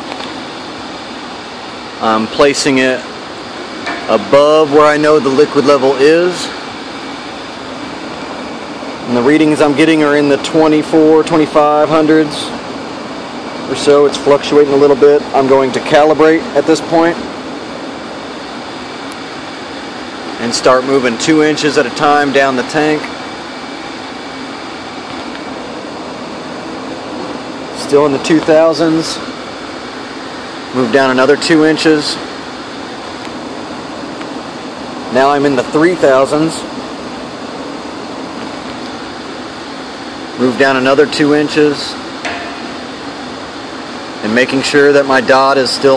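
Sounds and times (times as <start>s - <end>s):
air handling machinery rushing: 0.0s - 45.9s
steady whooshing fan noise: 0.0s - 45.9s.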